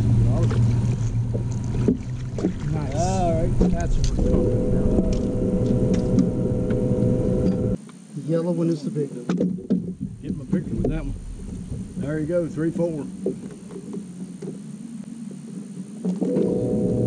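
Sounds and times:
boat motor hum: 0:00.0 - 0:07.8, 0:09.5 - 0:17.0
steady high whine: 0:00.0 - 0:17.0.

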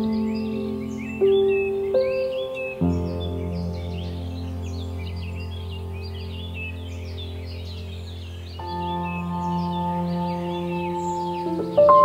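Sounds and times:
ambient music with held chords: 0:00.0 - 0:12.0
birds chirping: 0:00.0 - 0:12.0.

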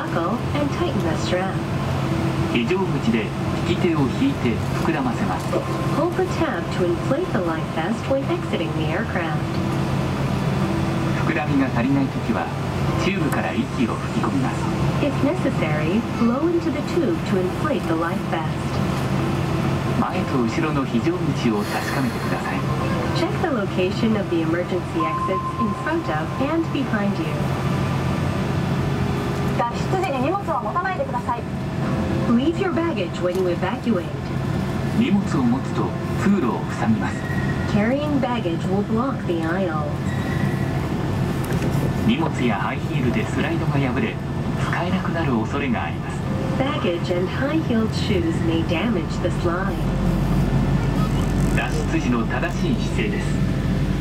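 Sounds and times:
cabin announcement voice: 0:00.0 - 0:01.7, 0:02.5 - 0:09.5, 0:11.1 - 0:18.8, 0:19.9 - 0:27.7, 0:29.6 - 0:31.6, 0:32.3 - 0:40.0, 0:42.0 - 0:50.0, 0:50.9 - 0:53.6
airliner cabin drone: 0:00.0 - 0:54.0.

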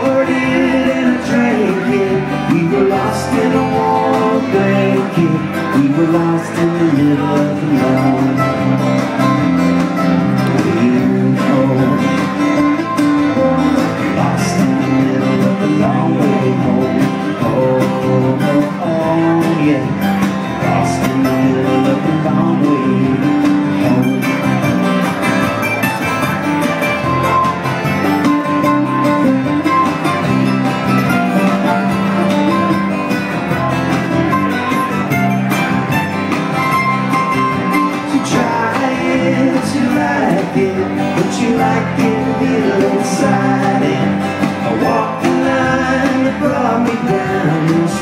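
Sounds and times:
acoustic guitar strumming: 0:00.0 - 0:48.0
drums: 0:00.0 - 0:48.0
electric guitar: 0:00.0 - 0:48.0
mandolin picking: 0:00.0 - 0:48.0.

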